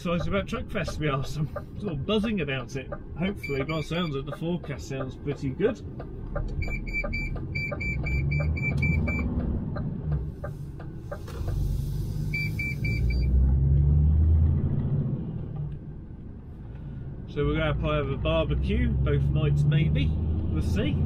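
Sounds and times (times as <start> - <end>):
truck diesel engine and road noise: 0.0 - 21.0
short high electronic beeps: 3.4 - 4.1.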